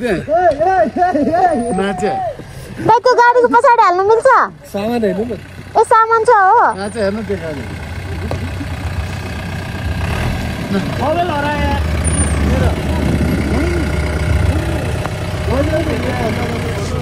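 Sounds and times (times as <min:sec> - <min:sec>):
pickup engine rumbling uphill: 0:00.0 - 0:17.0.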